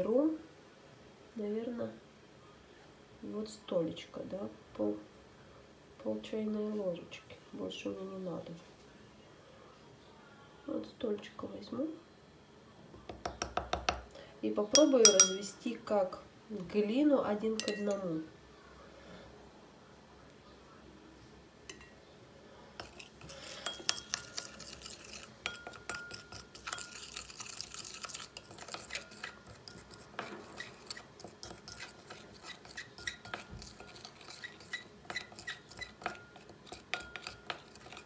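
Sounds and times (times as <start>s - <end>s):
spoon scraping in glass bowl: 14.7s - 15.6s, 17.6s - 18.0s, 22.8s - 38.0s.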